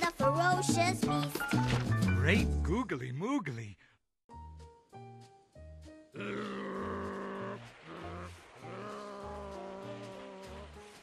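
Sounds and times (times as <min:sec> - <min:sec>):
light background music: 0:00.0 - 0:03.0, 0:04.3 - 0:11.0.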